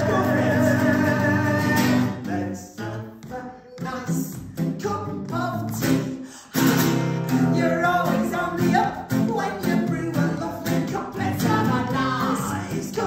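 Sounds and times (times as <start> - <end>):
acoustic guitar strummed: 0.0 - 2.4, 4.4 - 12.6
person singing: 0.0 - 6.6, 7.2 - 13.0.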